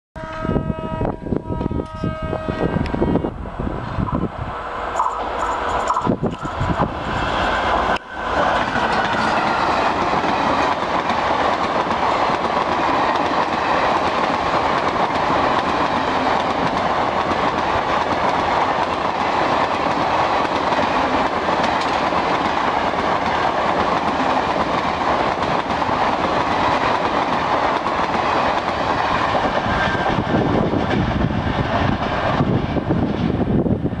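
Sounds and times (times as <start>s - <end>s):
electric train passing at speed: 0.2s - 34.0s
wheels clickety-clack on rail: 4.9s - 34.0s.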